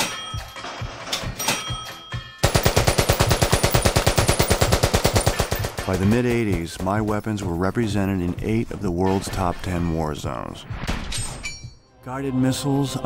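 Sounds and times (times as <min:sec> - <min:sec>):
gunshots: 0:02.4 - 0:07.2.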